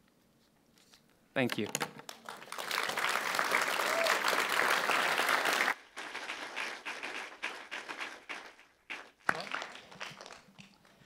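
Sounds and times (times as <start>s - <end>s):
audience applauding: 2.1s - 10.6s.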